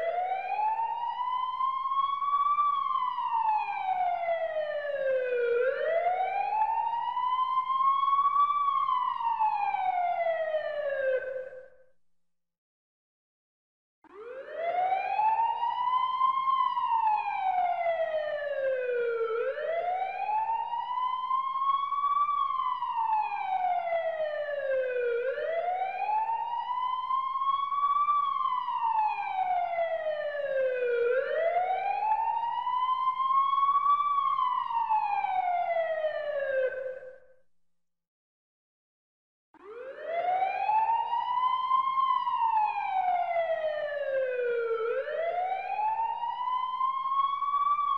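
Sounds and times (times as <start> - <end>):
emergency siren wailing: 0.0 - 11.7, 14.1 - 37.2, 39.6 - 47.9.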